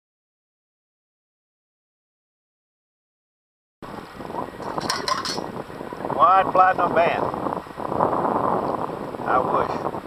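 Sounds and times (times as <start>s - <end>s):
water sloshing and draining: 4.6s - 5.6s.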